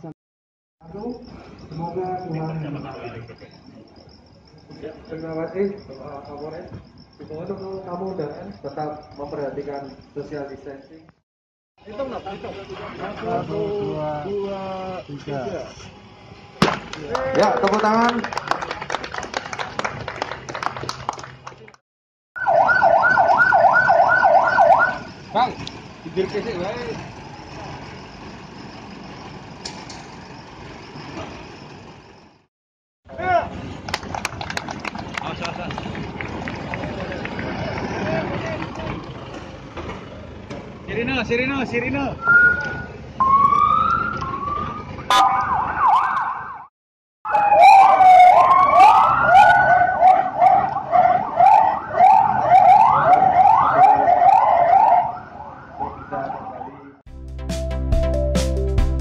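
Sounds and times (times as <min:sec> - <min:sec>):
vehicle engines idling: 0:00.8 - 0:11.1, 0:11.8 - 0:21.7, 0:23.1 - 0:32.4, 0:33.1 - 0:45.6
police sirens wailing and yelping: 0:22.4 - 0:28.6, 0:42.2 - 0:46.7, 0:47.3 - 0:57.0
sharp clicks: 0:25.6 - 0:25.8.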